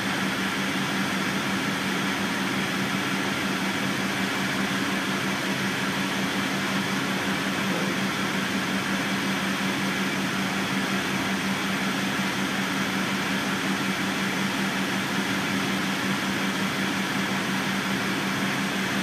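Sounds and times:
air conditioning blowing: 0.0s - 19.0s
diesel engine idling: 0.1s - 19.0s.

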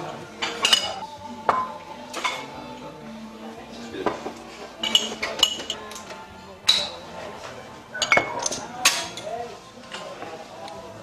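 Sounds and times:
glass bottles clinking: 0.3s - 2.6s, 4.0s - 7.1s, 7.9s - 9.2s.

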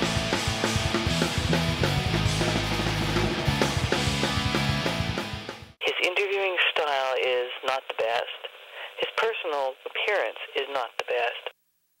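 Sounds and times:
person speaking over telephone: 5.8s - 11.6s.

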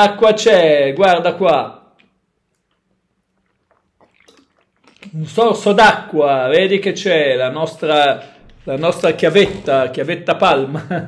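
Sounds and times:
person swallowing water: 2.0s - 5.2s.

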